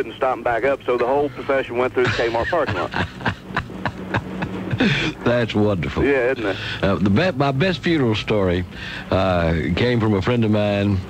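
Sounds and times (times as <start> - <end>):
steady low hum: 0.0 - 11.0
laughter over am radio: 2.0 - 5.3.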